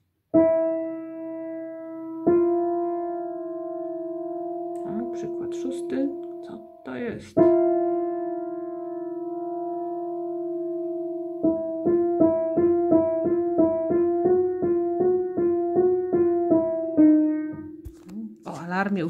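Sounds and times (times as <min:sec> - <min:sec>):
piano notes alternating: 0:00.4 - 0:18.5.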